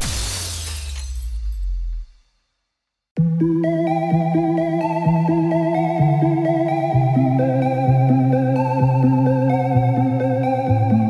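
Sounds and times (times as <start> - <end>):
glass breaking crash: 0.0 - 2.2.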